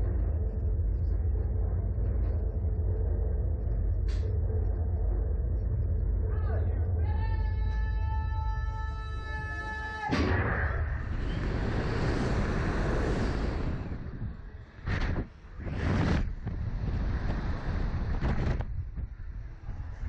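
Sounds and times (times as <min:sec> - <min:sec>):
wind buffeting microphone: 0:10.9 - 0:20.0.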